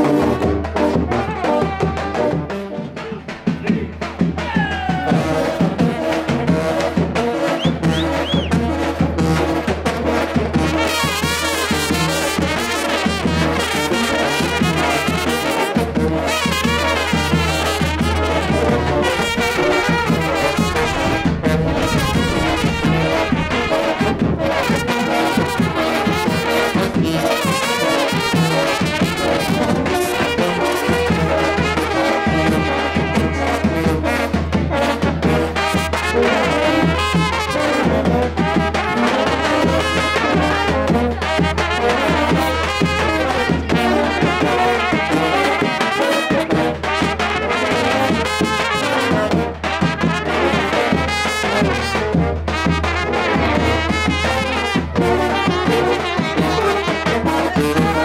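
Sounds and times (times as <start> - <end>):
brass band playing: 0.0 - 58.0
tuba low bass: 5.2 - 58.0.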